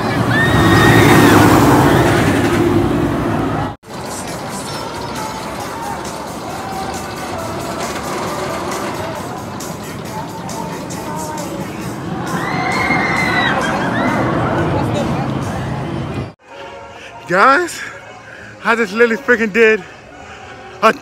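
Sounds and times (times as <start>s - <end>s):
rider screaming: 0.0s - 2.6s, 12.2s - 14.5s
roller coaster rushing rumble: 0.0s - 16.3s
amusement park background noise: 0.0s - 21.0s.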